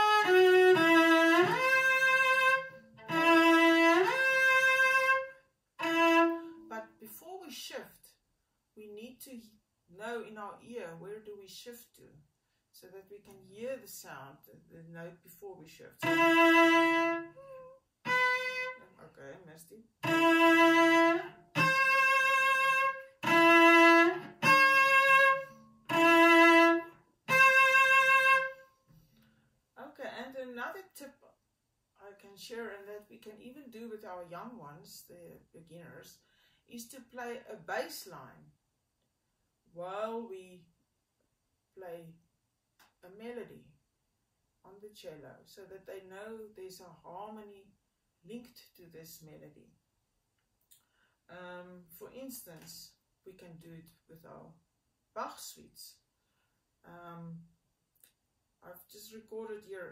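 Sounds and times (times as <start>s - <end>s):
bowed cello: 0.0s - 6.7s, 16.0s - 17.4s, 18.1s - 18.8s, 20.0s - 28.5s.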